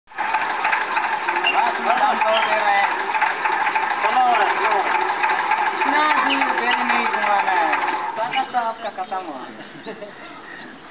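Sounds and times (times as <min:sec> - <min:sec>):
small engine rattling: 0:00.1 - 0:10.6
people talking: 0:01.3 - 0:03.2, 0:04.0 - 0:10.8.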